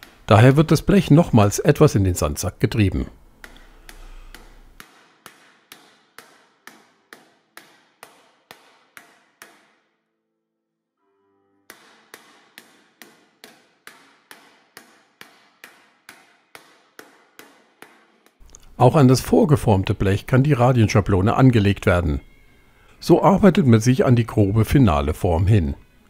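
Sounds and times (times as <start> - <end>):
mallet tapping sheet metal: 3.4 - 9.9, 11.7 - 18.4.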